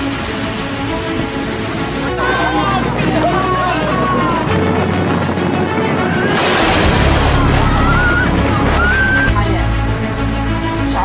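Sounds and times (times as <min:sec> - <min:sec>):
wind blasting microphone: 0:00.0 - 0:10.6
thin wavering high tone: 0:07.2 - 0:09.4.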